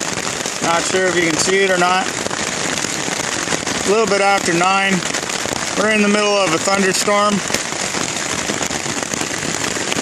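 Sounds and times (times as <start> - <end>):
heavy rain on a tarp: 0.0 - 10.0.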